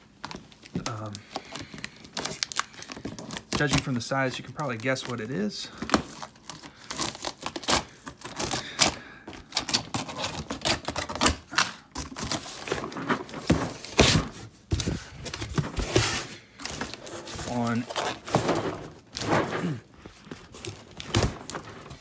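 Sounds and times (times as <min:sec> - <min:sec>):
packing tape torn open: 0:00.2 - 0:12.7.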